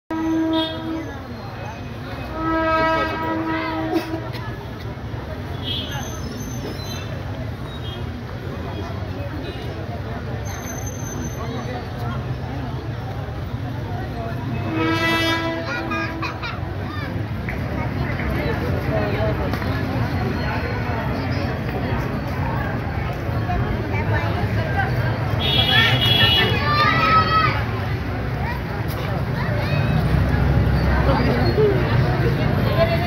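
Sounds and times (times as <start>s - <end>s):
murmur of crowd chatter: 0.1s - 33.0s
steady pitched horn tone: 2.2s - 4.2s, 14.6s - 15.9s.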